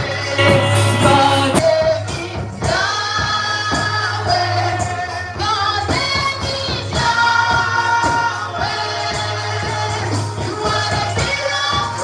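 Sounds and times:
gospel accompaniment with bass and beat: 0.0s - 12.0s
woman singing into a microphone: 0.0s - 12.0s.

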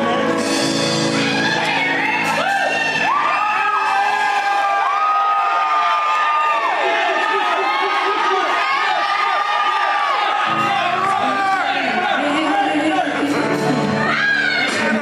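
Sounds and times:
audience cheering and whooping: 1.1s - 13.2s, 14.0s - 15.0s.

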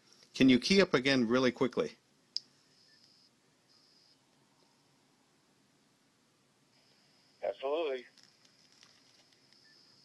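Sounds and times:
faint high hiss: 0.0s - 10.0s.

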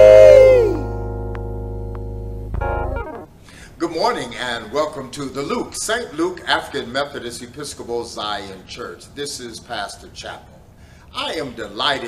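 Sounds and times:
singer holding last note: 0.0s - 1.1s
sustained keyboard chord: 0.8s - 3.4s.

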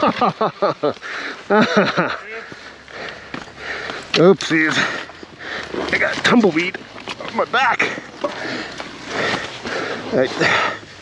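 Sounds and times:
person breathing hard: 1.0s - 1.5s, 2.4s - 5.9s, 7.9s - 11.0s.

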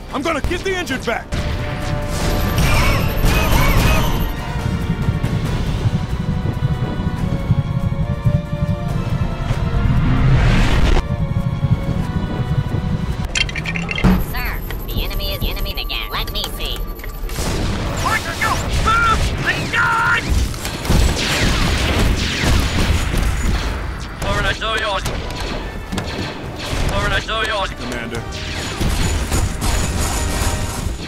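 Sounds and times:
soundtrack music: 0.0s - 31.0s
gunshots: 0.4s - 5.9s, 17.3s - 31.0s.

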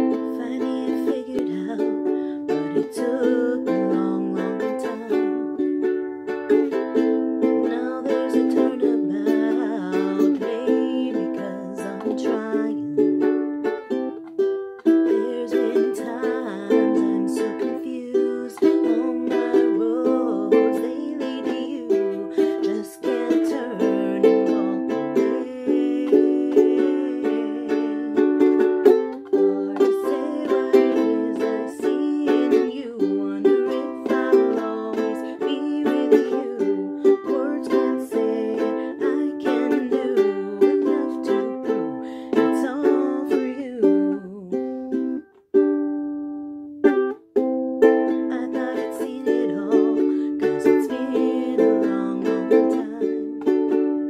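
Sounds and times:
woman singing: 0.0s - 45.3s, 47.8s - 54.0s
ukulele strumming: 0.0s - 54.0s.

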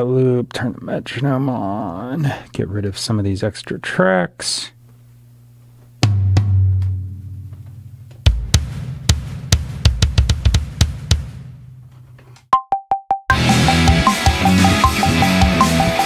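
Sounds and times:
electronic drum hits: 6.0s - 7.6s, 8.2s - 11.6s, 12.6s - 16.0s
metronome beeps: 12.6s - 16.0s.

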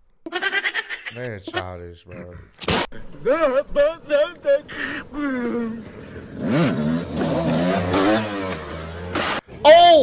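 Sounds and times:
motorcycle engine revving: 5.2s - 9.5s.

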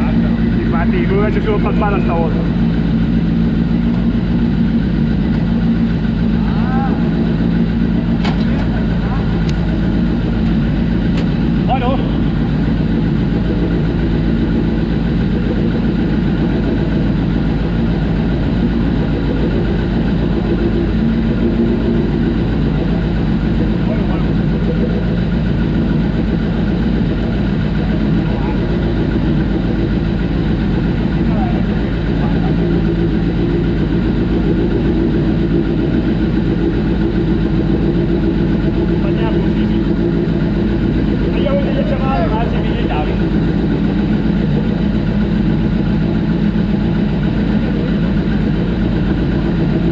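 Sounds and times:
motorcycle engine idling: 0.0s - 49.9s.

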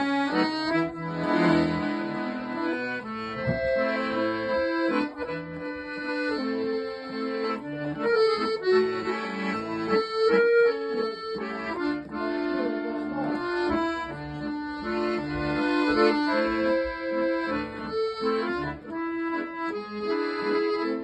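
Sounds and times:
button accordion playing: 0.0s - 21.0s.

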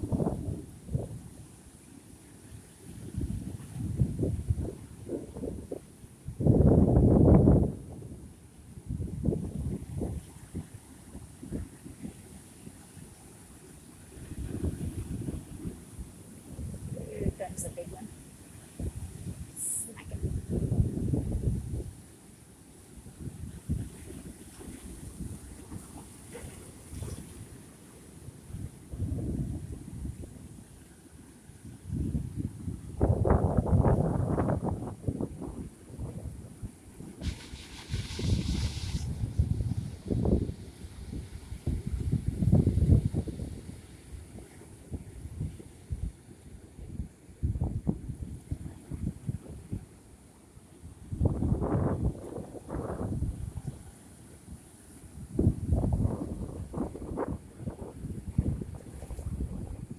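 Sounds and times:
wind buffeting microphone: 0.0s - 1.3s, 3.0s - 12.3s, 14.1s - 18.1s, 18.7s - 22.0s, 28.4s - 30.5s, 31.7s - 49.9s, 50.9s - 54.0s, 55.1s - 59.9s
surf breaking against rocks: 37.2s - 40.4s.

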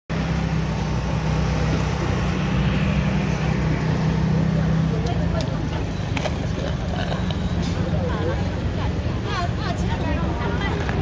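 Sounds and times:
indistinct voices: 3.0s - 11.0s.

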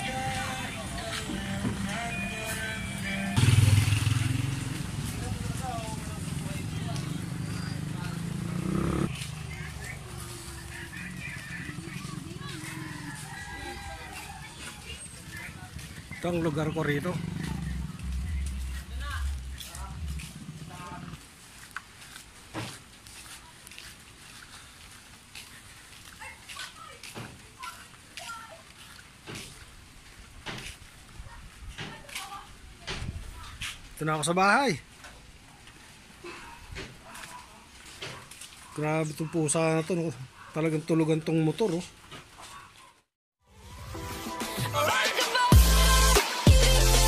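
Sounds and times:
motorcycle engine running: 3.4s - 13.3s, 14.0s - 21.2s.

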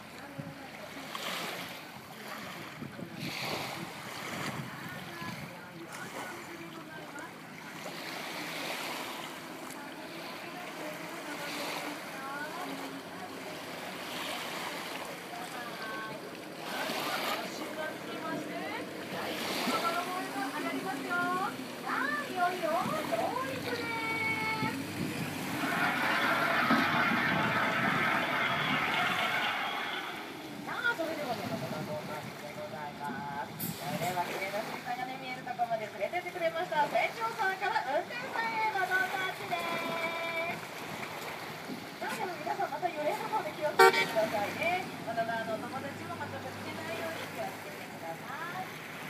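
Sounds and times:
rush of water: 0.0s - 49.0s
people chattering and exclaiming: 9.4s - 32.4s
short horn toots: 43.8s - 44.2s.

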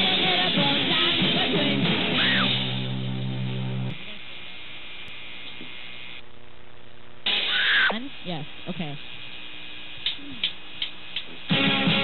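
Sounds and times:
amplifier hum: 2.2s - 11.6s.

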